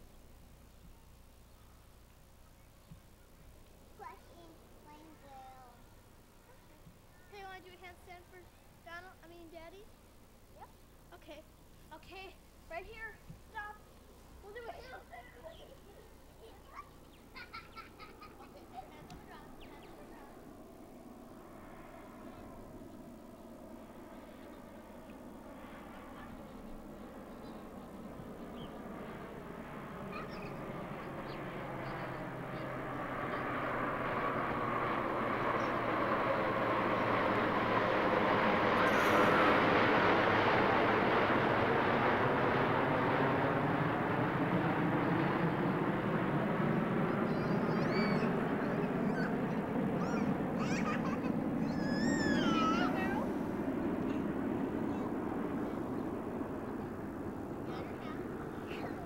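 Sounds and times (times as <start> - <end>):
jet airplane flying overhead: 11.3 - 59.0.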